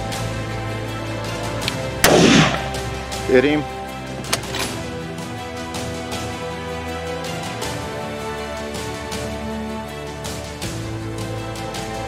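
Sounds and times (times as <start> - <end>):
background music: 0.0 - 12.0
rifle shot: 2.0 - 3.0.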